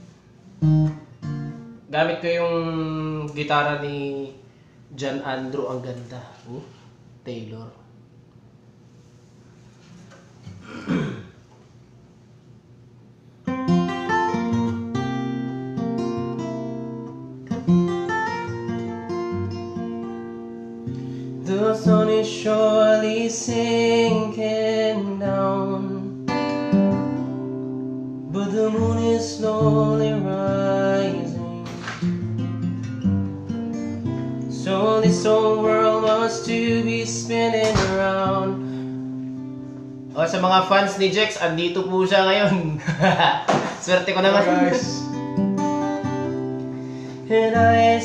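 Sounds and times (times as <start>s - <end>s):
acoustic guitar strumming: 0.0s - 3.9s, 13.4s - 42.8s, 43.5s - 48.0s
man singing: 21.4s - 26.2s, 28.3s - 32.0s, 34.5s - 38.7s, 43.9s - 45.2s, 47.2s - 48.0s.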